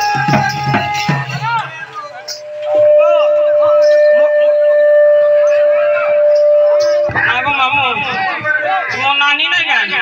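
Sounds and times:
faint voices: 0.0s - 10.0s
loud voice over loudspeaker: 7.1s - 10.0s.

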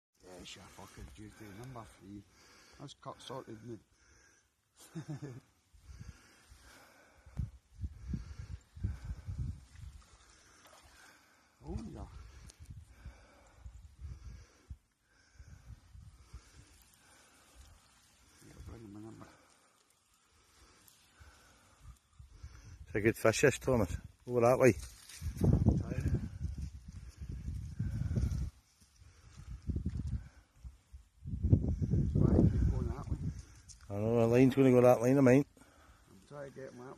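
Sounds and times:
person laughing: 4.8s - 5.5s
wind buffeting microphone: 7.3s - 10.2s, 11.6s - 14.8s, 24.8s - 33.8s.

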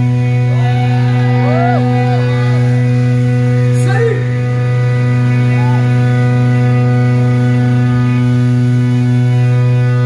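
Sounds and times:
low buzzy amplified drone: 0.0s - 10.0s.

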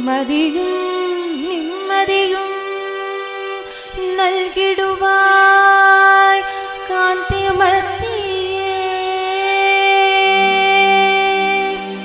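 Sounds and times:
woman singing a long held note: 4.0s - 12.0s
low steady drone note: 4.8s - 10.7s.

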